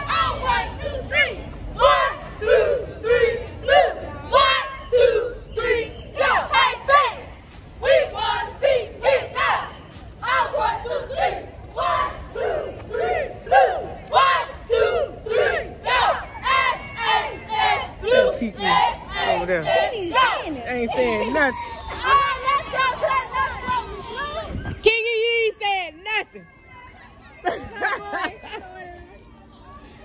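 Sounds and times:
cheerleaders chanting in unison: 0.0s - 20.6s, 22.0s - 24.5s.

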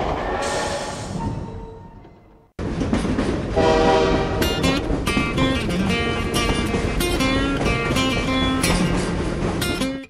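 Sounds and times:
train noise: 0.0s - 10.0s
train horn chord: 3.6s - 4.7s
strummed acoustic guitar music: 4.4s - 10.0s.

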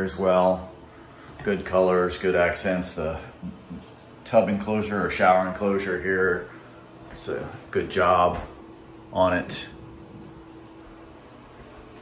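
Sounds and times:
faint steady hum: 0.0s - 12.0s.

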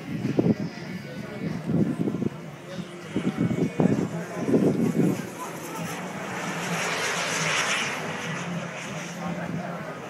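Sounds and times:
model jets flying past: 0.0s - 10.0s.

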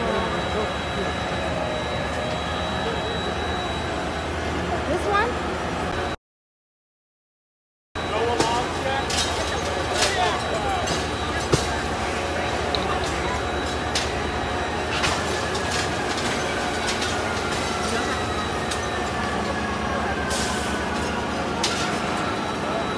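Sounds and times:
faint whine falling in pitch: 0.0s - 4.6s
diesel engine rumbling: 0.0s - 6.2s, 8.0s - 22.9s.

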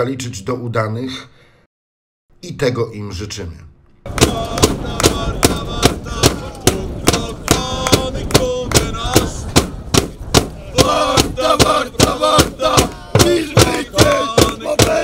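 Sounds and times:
football fans chanting: 4.1s - 15.0s
steady drum beat: 4.1s - 15.0s.

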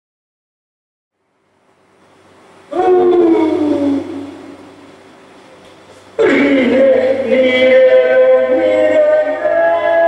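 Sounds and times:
man chanting long note: 2.7s - 4.6s, 6.2s - 10.0s.

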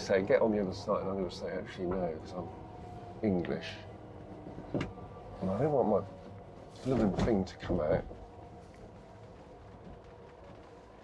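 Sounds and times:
light rain on car roof: 4.2s - 11.0s.

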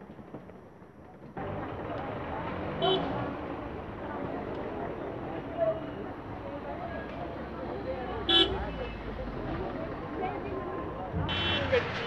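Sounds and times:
street traffic noise: 0.0s - 12.0s
people talking: 1.4s - 12.0s.

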